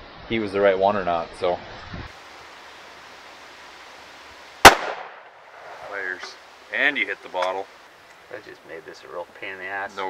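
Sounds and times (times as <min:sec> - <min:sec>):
rifle shot: 0:04.6 - 0:05.7.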